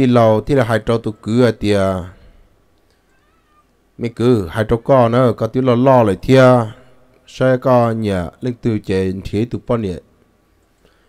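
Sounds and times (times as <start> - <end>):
person narrating: 0.0 - 2.3, 4.0 - 10.1.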